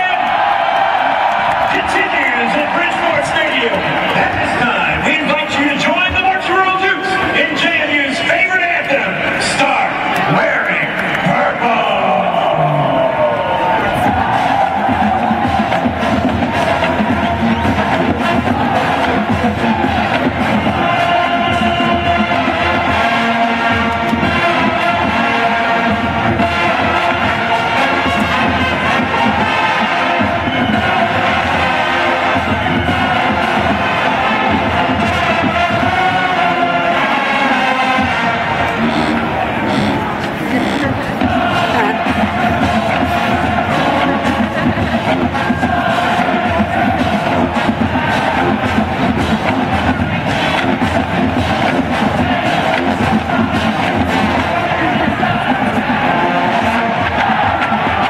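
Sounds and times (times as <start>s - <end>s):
marching band playing brass and drums: 0.0s - 8.3s, 13.7s - 58.0s
crowd noise: 0.0s - 58.0s.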